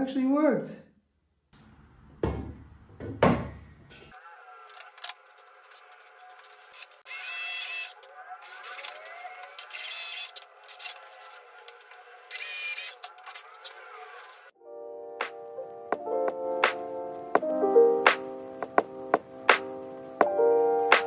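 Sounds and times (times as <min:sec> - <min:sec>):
cordless drill boring into wood: 0:07.1 - 0:08.0, 0:08.6 - 0:10.4, 0:12.3 - 0:13.0.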